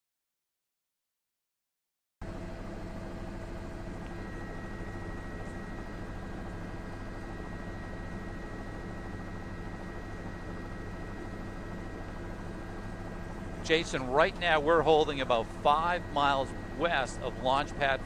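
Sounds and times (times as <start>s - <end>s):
helicopter engine and rotor drone: 2.2s - 18.0s.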